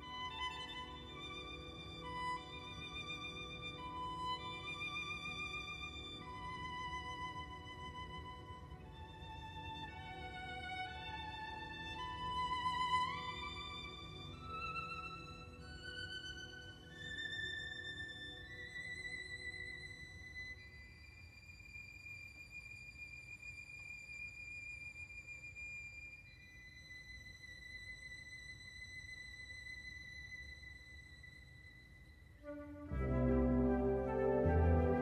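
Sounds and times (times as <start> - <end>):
solo violin long high notes: 0.0 - 35.0
orchestra playing: 32.5 - 35.0.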